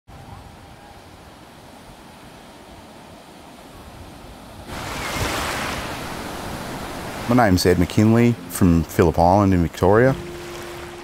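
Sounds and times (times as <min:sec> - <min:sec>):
waves washing up shallows: 0:00.3 - 0:11.0
ocean surf breaking: 0:01.0 - 0:11.0.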